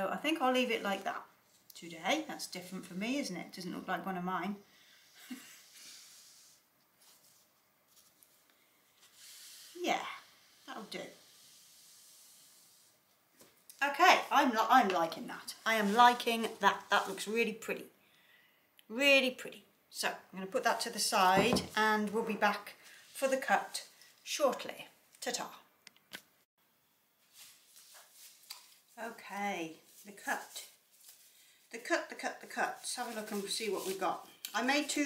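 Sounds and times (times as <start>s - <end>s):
plastic glove rustling: 6.0s - 17.7s, 27.2s - 35.0s.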